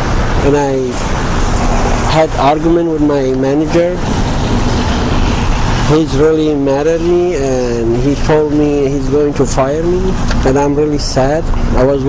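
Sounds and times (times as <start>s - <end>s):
road traffic rushing: 0.0s - 12.0s
vehicle passing close: 0.0s - 12.0s.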